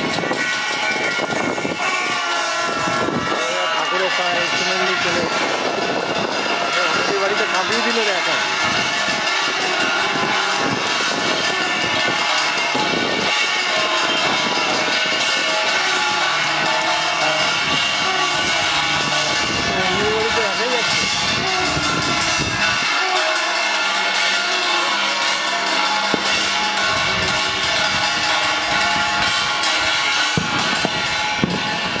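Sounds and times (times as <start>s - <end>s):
beating metal plates: 0.0s - 32.0s.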